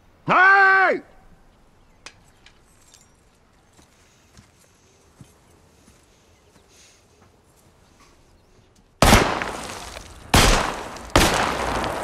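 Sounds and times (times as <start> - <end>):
light clicks and clinks: 2.1 - 3.6.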